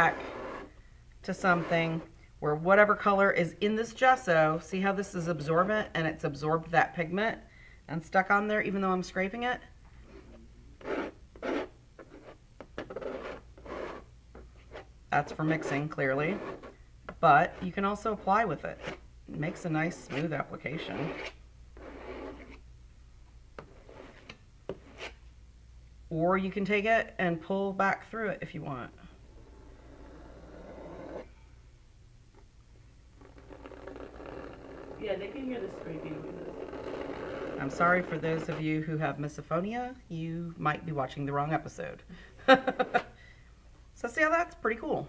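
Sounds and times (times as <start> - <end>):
palette knife scraping paint: 0.0 - 0.7, 1.3 - 2.1, 10.1 - 16.8, 17.4 - 22.6, 23.6 - 25.2, 29.3 - 31.3, 33.2 - 38.8.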